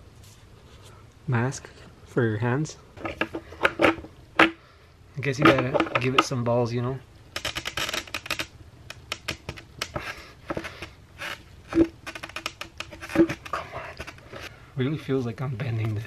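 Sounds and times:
skateboard wheel scraping and creaking: 3.0s - 4.6s, 5.4s - 6.4s, 7.4s - 14.5s.

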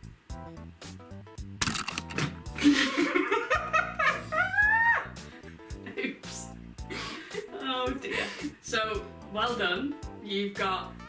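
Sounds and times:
background music: 0.0s - 11.0s
women laughing loudly: 2.6s - 5.1s.

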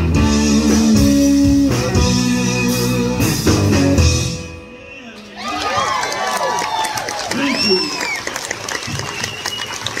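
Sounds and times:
audience applauding and cheering: 5.2s - 10.0s.

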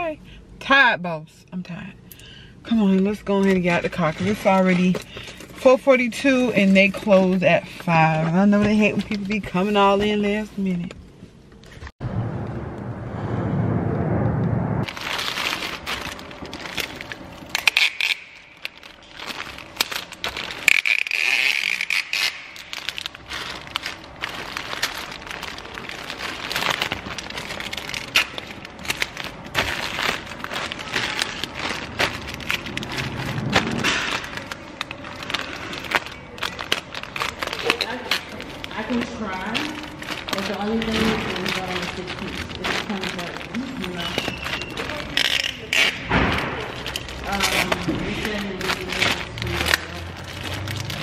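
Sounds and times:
plastic mailer bags crinkling: 2.9s - 10.9s, 14.9s - 51.0s
low rumble: 11.8s - 17.6s, 22.8s - 45.0s, 46.3s - 51.0s.

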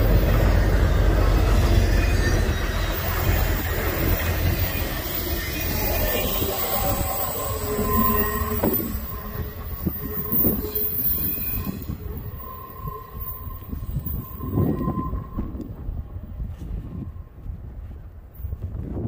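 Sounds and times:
thin high wheel squeals: 0.0s - 15.6s
train wheels rumbling on track: 0.0s - 19.0s.

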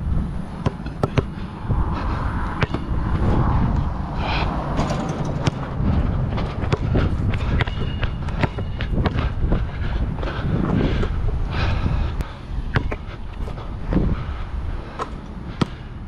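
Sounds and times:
wind buffeting microphone: 0.0s - 15.6s
basketball bouncing on hard court: 0.6s - 1.4s, 4.8s - 5.7s, 6.4s - 9.3s, 12.7s - 13.0s.

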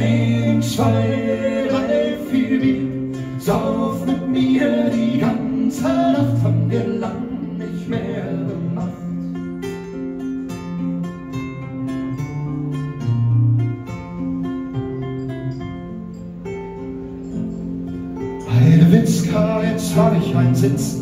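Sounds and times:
acoustic guitars playing: 0.0s - 21.0s.

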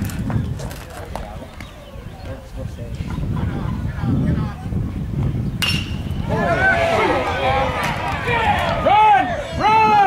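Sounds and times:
metal bat hitting ball: 5.6s - 6.2s.

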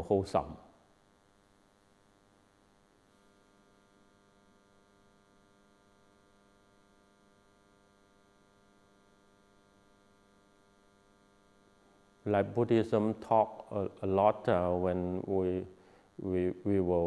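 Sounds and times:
faint electrical hum: 0.0s - 17.0s.

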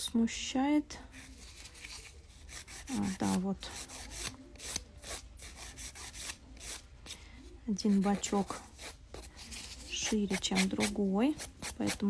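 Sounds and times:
nail file rasping on fingernail: 2.5s - 6.8s, 7.9s - 12.0s.

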